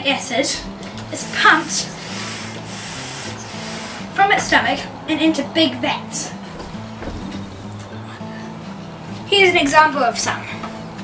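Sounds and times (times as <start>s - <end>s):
floor pump hissing: 0.8s - 4.6s.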